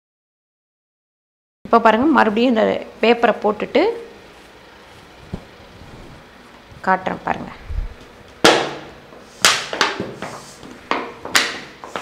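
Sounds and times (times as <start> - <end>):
sharp knocks: 8.4 - 10.2.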